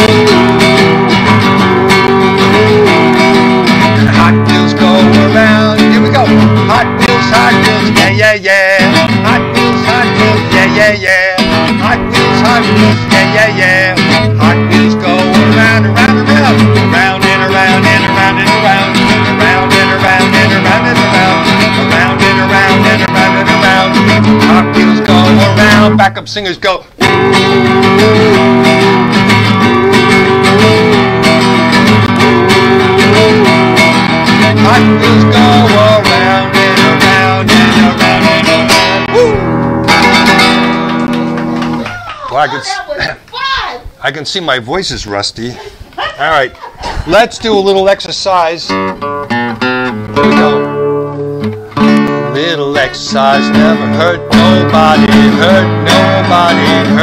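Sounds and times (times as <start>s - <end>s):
wordless singing: 0.0s - 26.2s, 27.0s - 39.5s, 52.2s - 57.0s
acoustic guitar strumming: 0.0s - 43.7s, 47.0s - 57.0s.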